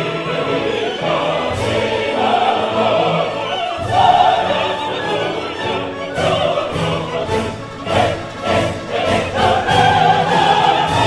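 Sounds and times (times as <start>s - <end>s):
full orchestra: 0.0s - 11.0s
opera chorus and soloists singing: 0.0s - 11.0s.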